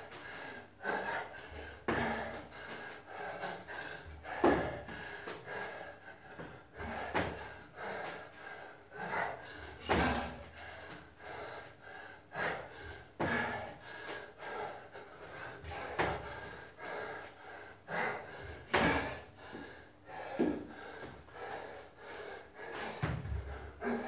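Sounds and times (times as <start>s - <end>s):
man breathing hard and gasping: 0.0s - 24.0s.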